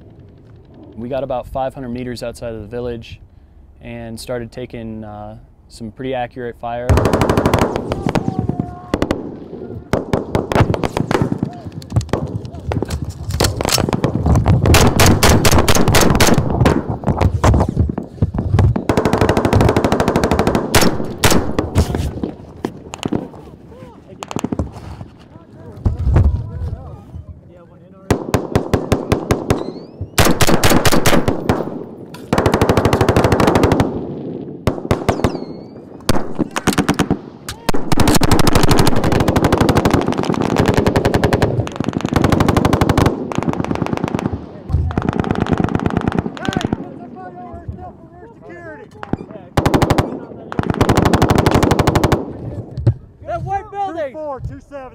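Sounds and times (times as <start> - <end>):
automatic gunfire: 6.9 - 12.4, 13.4 - 17.4, 18.7 - 22.4, 28.1 - 46.9, 49.0 - 52.4.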